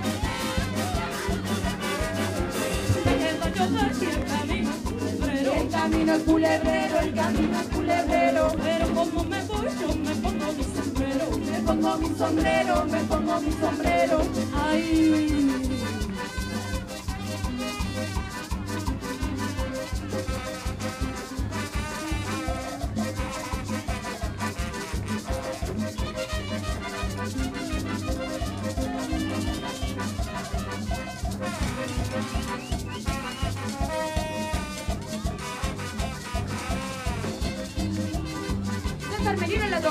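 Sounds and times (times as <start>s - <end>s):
accordion: 0.0s - 39.9s
congas: 0.0s - 39.9s
maracas: 0.0s - 39.9s.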